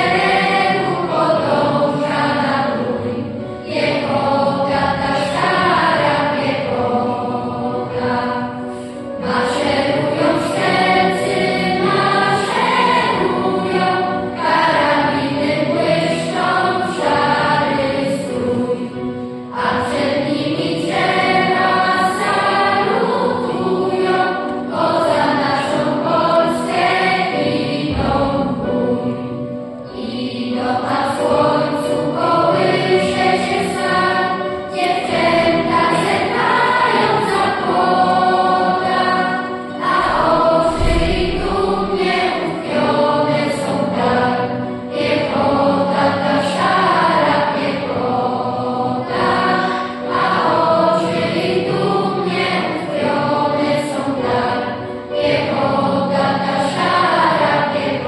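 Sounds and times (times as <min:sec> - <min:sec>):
children's choir singing: 0:00.0 - 0:58.0.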